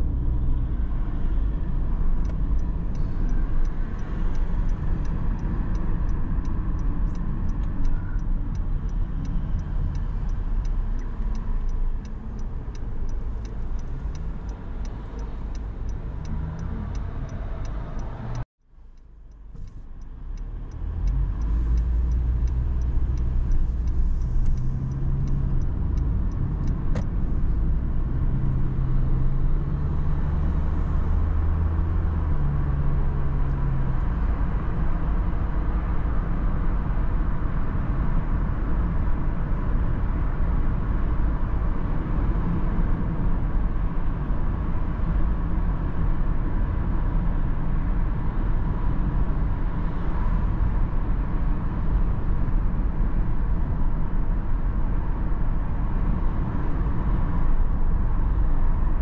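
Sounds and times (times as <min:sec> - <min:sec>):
car engine and tyre noise: 0:00.0 - 0:59.0
turn indicator clicking: 0:02.2 - 0:18.4, 0:19.0 - 0:27.7.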